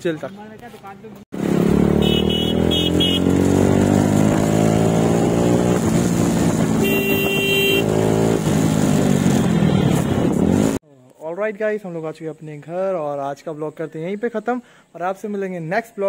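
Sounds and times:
motorcycle engine accelerating: 0:01.3 - 0:10.8
vehicle horn beeping: 0:01.9 - 0:03.4, 0:06.8 - 0:08.0.

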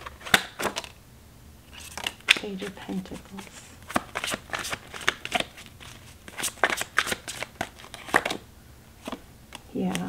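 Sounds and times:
cards rustling: 0:00.0 - 0:01.0, 0:01.7 - 0:08.4, 0:09.0 - 0:10.0
cards snapping: 0:00.0 - 0:01.0, 0:01.7 - 0:02.7, 0:03.8 - 0:08.4, 0:09.0 - 0:10.0.

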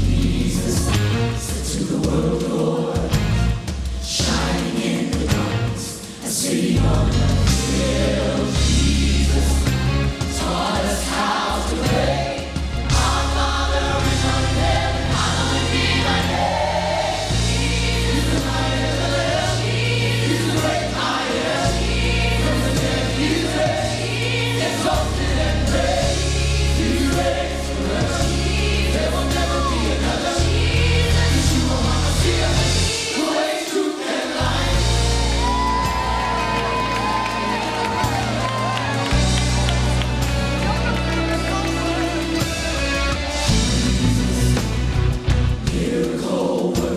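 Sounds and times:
deep bass notes: 0:00.0 - 0:01.4, 0:11.8 - 0:32.9, 0:39.0 - 0:45.8
choir singing: 0:00.0 - 0:46.9
gospel band playing: 0:00.0 - 0:46.9.

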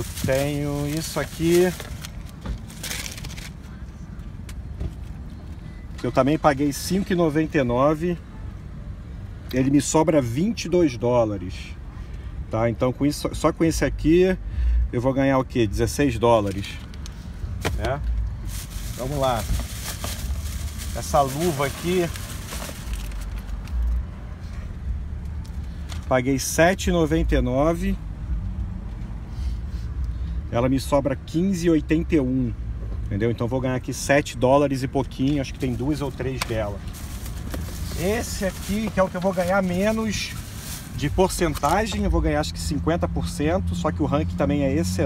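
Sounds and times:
plastic bags rustling: 0:00.0 - 0:03.6, 0:17.7 - 0:23.8, 0:35.4 - 0:41.9.

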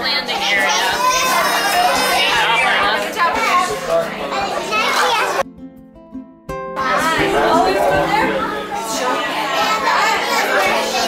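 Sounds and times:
children chattering: 0:00.0 - 0:05.4, 0:07.1 - 0:11.0.

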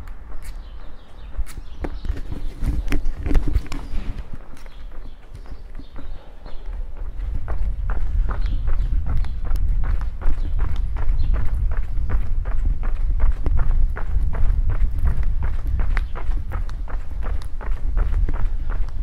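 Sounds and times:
footsteps on pavement: 0:00.0 - 0:19.0.

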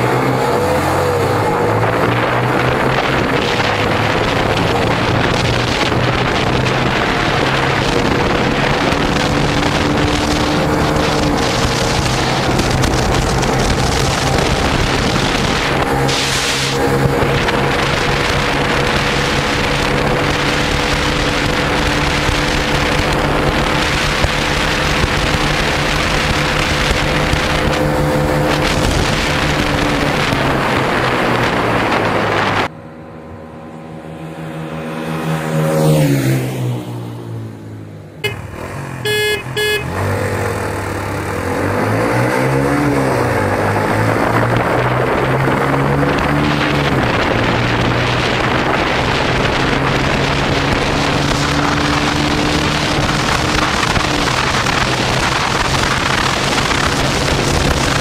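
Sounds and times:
wind noise on microphone: 0:00.0 - 0:32.9, 0:38.2 - 0:58.0
motorcycle engine revving: 0:00.0 - 0:58.0.

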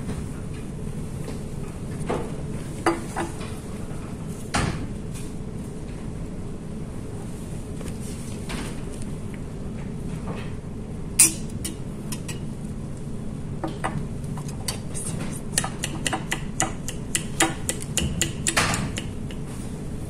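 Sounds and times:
room hum: 0:00.0 - 0:20.0.

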